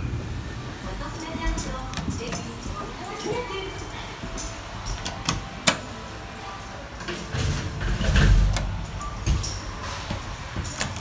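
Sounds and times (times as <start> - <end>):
elevator doors sliding shut: 0.0 - 11.0.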